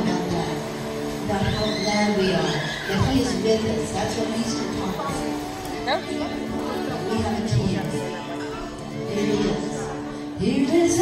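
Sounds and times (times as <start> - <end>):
people talking and calling out: 0.0 - 11.0
worship band playing softly: 0.0 - 11.0.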